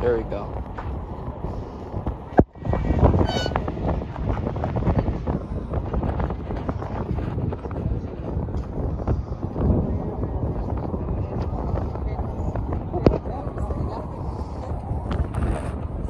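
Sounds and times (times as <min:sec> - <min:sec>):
wind buffeting microphone: 0:00.0 - 0:16.0
faint voices: 0:07.8 - 0:16.0.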